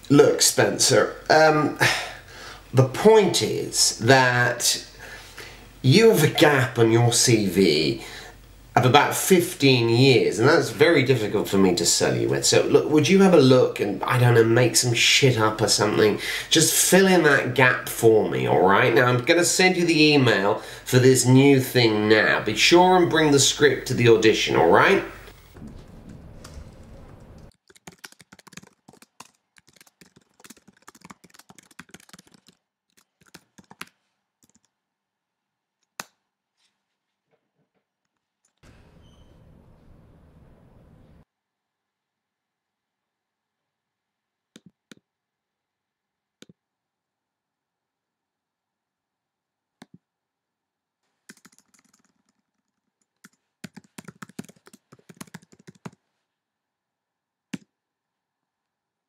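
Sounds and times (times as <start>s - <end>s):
room noise: 0.0s - 29.3s, 35.8s - 41.3s
laptop keyboard typing: 27.4s - 34.8s, 51.2s - 56.0s.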